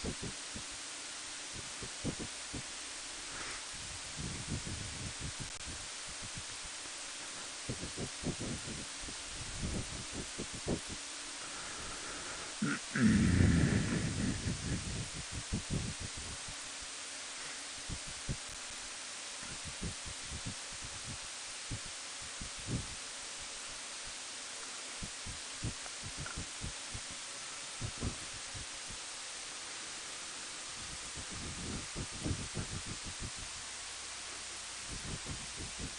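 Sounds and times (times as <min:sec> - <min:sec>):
wind hiss on microphone: 0:00.0 - 0:35.9.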